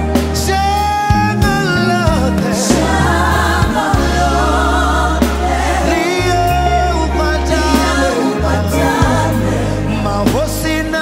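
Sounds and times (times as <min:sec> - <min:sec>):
man singing: 0:00.0 - 0:03.1, 0:05.8 - 0:11.0
backing music: 0:00.0 - 0:11.0.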